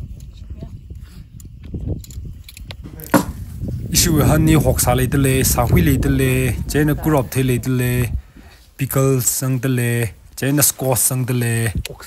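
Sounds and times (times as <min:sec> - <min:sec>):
wind rumble on microphone: 0:00.0 - 0:09.2
muffled voices talking: 0:03.9 - 0:08.2.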